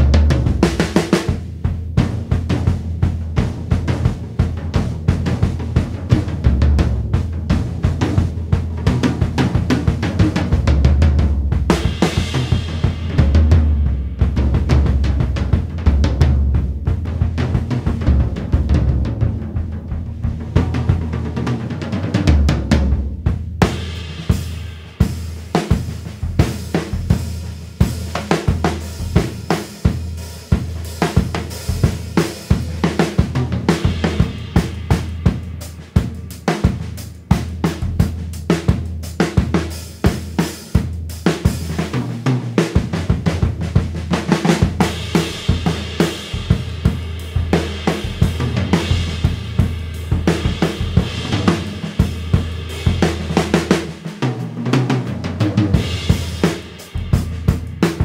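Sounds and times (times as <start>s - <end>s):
bass drum thuds: 0.0s - 29.4s, 43.0s - 53.8s, 55.3s - 58.0s
snare drum: 0.0s - 58.0s.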